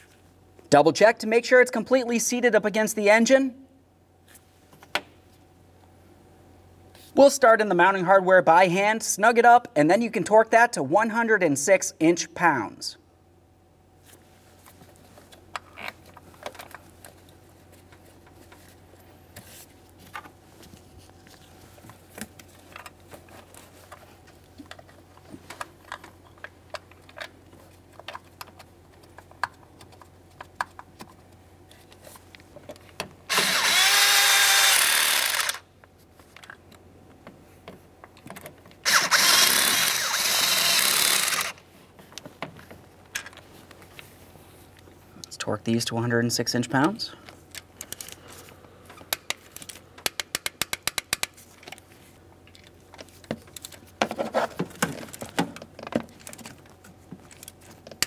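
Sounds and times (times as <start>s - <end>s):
power tool driving bolts: 33.3s - 35.6s, 38.8s - 41.6s
bolts clicking and tapping: 48.9s - 51.8s.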